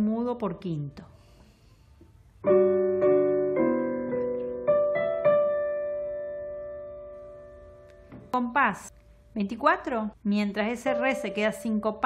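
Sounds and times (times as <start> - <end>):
digital piano chords: 2.4 - 8.3.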